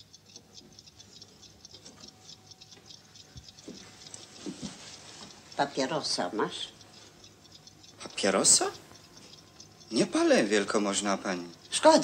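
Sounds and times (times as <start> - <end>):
faint rapid ticking and clicking: 0.0 - 12.0.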